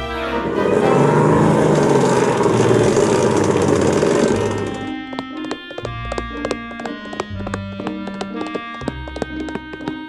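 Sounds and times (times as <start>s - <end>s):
small car engine running: 0.4s - 10.0s.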